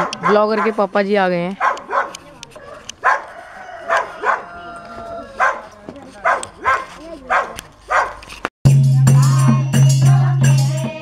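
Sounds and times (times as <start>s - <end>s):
dog barking: 0.0s - 0.8s, 1.6s - 4.6s, 5.4s - 8.2s.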